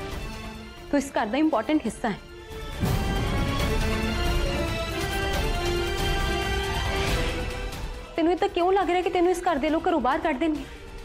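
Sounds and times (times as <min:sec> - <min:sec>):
dramatic background score: 0:00.0 - 0:11.0
deep music cue: 0:02.6 - 0:07.8.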